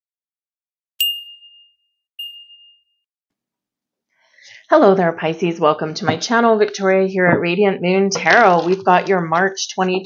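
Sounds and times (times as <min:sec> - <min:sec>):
bright chime dings: 0:01.0 - 0:03.0.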